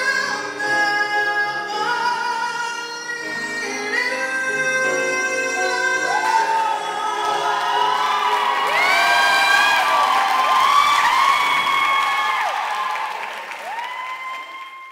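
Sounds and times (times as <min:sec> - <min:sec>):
audience applauding and cheering: 0:06.0 - 0:14.9
rising and falling whoops: 0:06.0 - 0:14.9.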